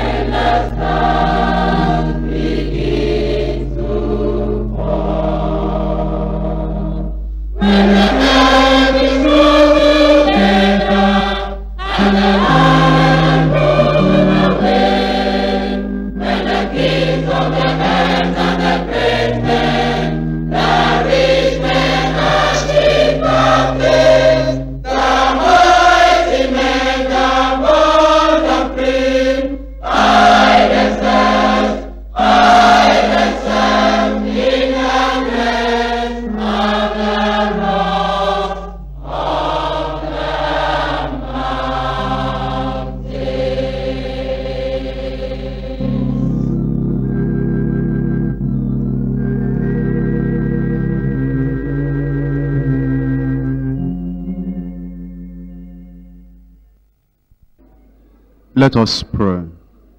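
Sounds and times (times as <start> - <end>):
choir singing a hymn: 0.0 - 56.4
steady low hum: 0.0 - 59.9.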